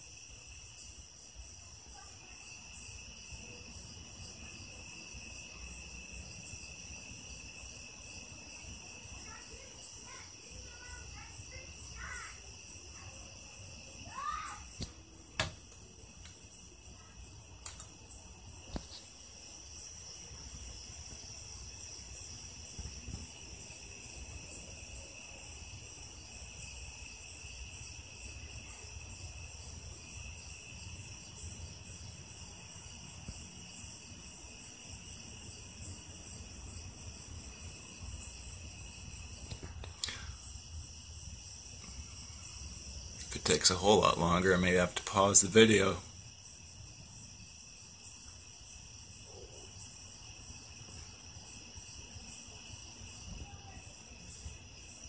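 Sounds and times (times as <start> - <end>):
faint clicks: 17.6 - 18.0, 39.4 - 40.3.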